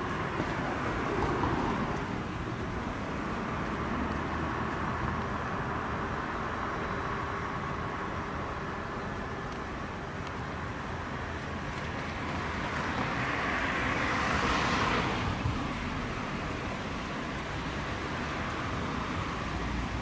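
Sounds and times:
vehicle passing: 0.0 - 9.4, 11.6 - 20.0
road traffic noise: 0.0 - 20.0.

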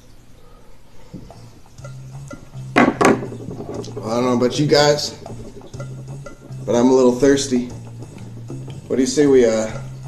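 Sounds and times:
glass bottles clinking: 1.6 - 10.0.

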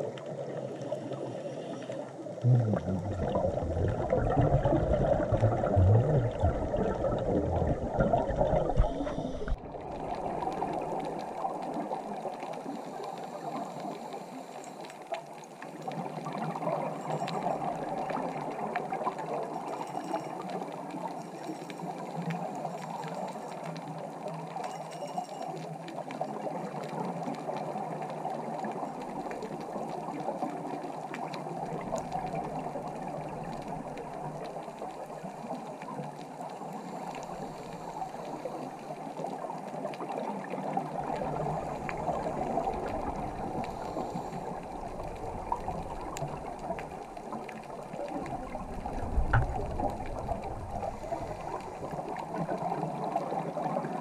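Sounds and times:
muffled underwater water rush: 0.0 - 54.0.

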